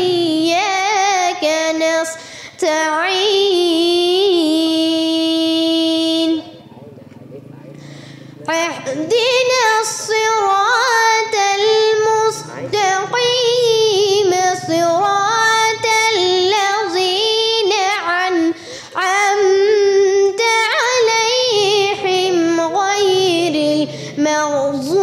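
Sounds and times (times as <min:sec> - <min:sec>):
girl chanting recitation: 0:00.0 - 0:06.6, 0:07.8 - 0:25.0.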